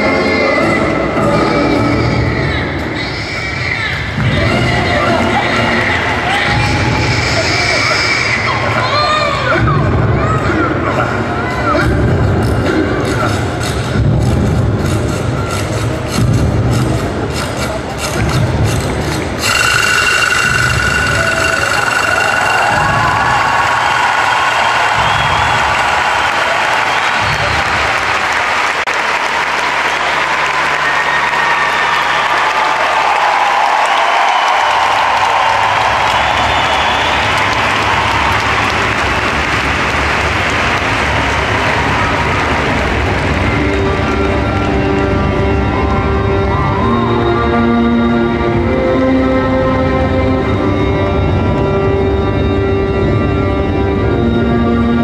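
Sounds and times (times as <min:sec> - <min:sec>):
music with a beat: 0:11.8 - 0:23.7
audience applauding and cheering: 0:18.1 - 0:47.9.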